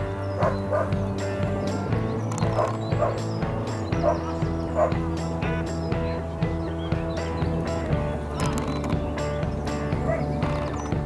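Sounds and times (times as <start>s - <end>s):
music with steady beat: 0.0s - 11.0s
dog yipping barks: 0.4s - 1.0s, 2.5s - 3.2s, 4.0s - 5.0s.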